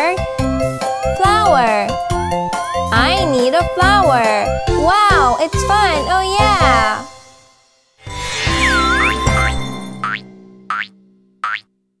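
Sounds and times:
cartoon boing sound effects: 8.8 - 11.6.

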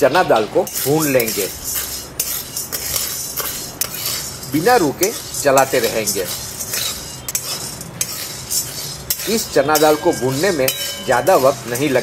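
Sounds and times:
dry lentils rattling in a pan: 0.6 - 12.0
spatula scraping a metal pan: 0.6 - 12.0.

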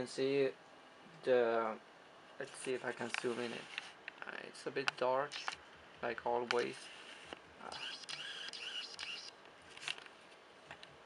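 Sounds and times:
camera click: 5.3 - 5.6, 7.7 - 9.3
camera lens motor whirring: 5.3 - 5.6, 6.8 - 9.4.

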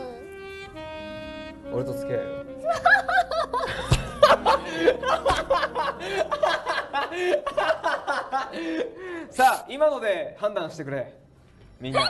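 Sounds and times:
woman laughing excitedly: 2.6 - 8.9.

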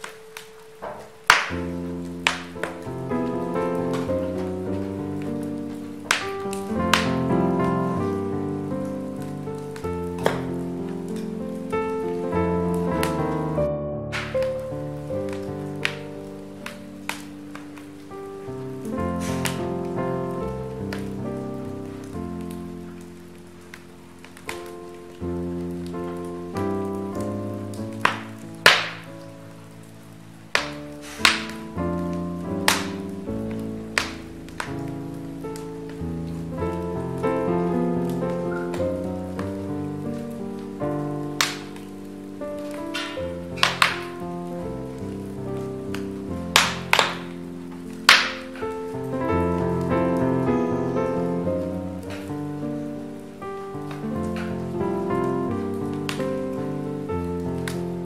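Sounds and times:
burning logs popping: 0.0 - 58.0
calm instrumental music: 0.0 - 58.0
wood fire crackling: 0.0 - 58.0.

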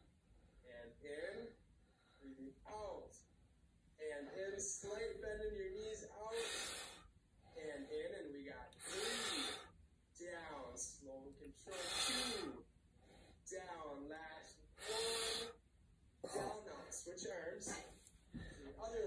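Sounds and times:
man breathing hard: 6.2 - 7.8, 8.8 - 9.8, 11.7 - 13.4, 14.8 - 15.6, 17.7 - 18.9.

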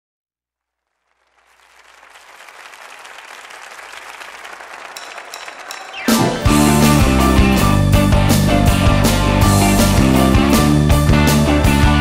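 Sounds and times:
congregation applauding: 0.7 - 8.0.

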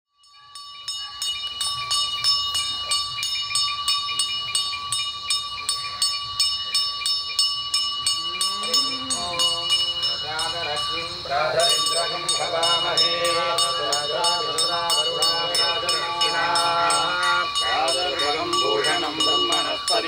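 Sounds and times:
hand bell ringing rapidly: 0.2 - 20.0
person chanting: 8.0 - 20.0.

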